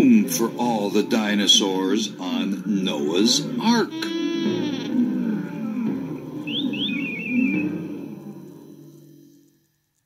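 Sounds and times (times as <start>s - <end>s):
warbling chirp: 3.9s - 9.3s
low rumbling growl: 4.8s - 9.2s
rising whistles: 5.0s - 9.5s.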